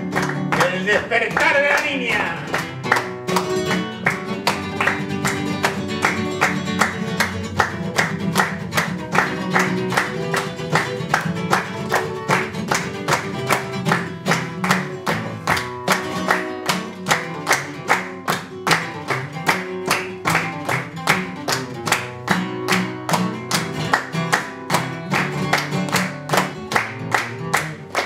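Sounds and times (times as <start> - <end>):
flamenco guitar playing: 0.0 - 28.0
hand clapping: 0.0 - 28.0.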